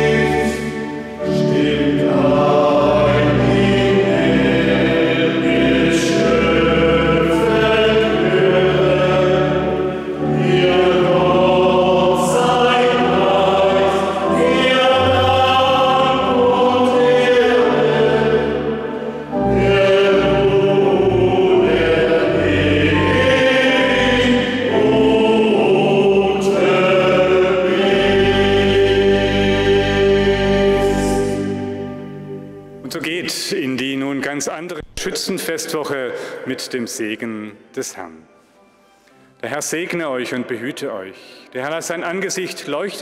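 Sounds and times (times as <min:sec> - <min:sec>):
men's choir singing: 0:00.0 - 0:32.4
pipe organ: 0:00.0 - 0:43.0.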